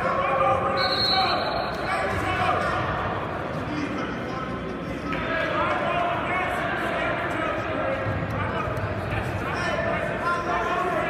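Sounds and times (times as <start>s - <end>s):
people shouting and talking: 0.0s - 11.0s.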